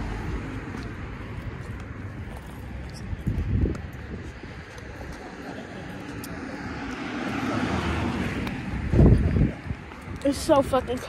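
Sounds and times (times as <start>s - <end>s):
passing vehicle: 0.0s - 11.0s.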